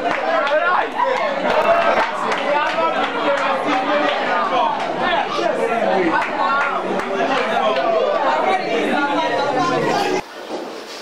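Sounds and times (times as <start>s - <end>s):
students chattering: 0.0s - 10.3s.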